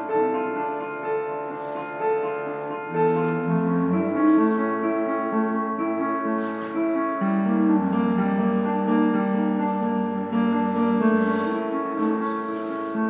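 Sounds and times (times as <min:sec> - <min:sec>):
cello: 0:00.0 - 0:13.0
piano: 0:00.0 - 0:13.0.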